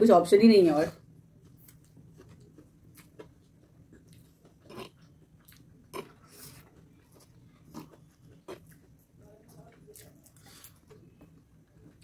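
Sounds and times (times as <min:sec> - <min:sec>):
chewing food: 0:01.4 - 0:12.0.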